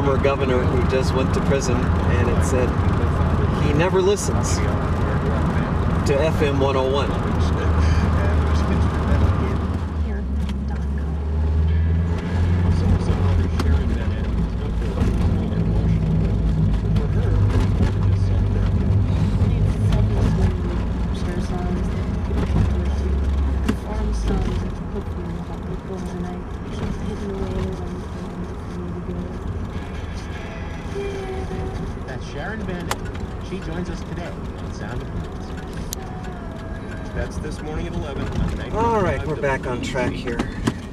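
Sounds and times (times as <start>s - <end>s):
car engine and road drone: 0.0s - 40.9s
car radio talk and music: 0.0s - 40.9s.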